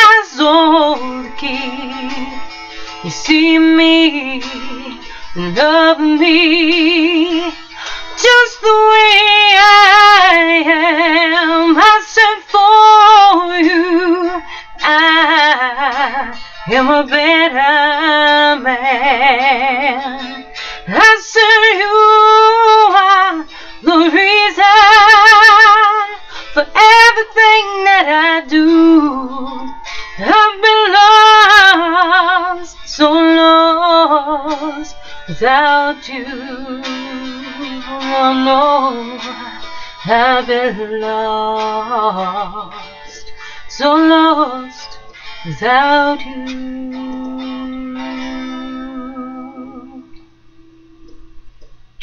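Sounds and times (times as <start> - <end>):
woman singing unaccompanied: 0.0 - 50.4
guitar accompaniment: 0.0 - 52.0.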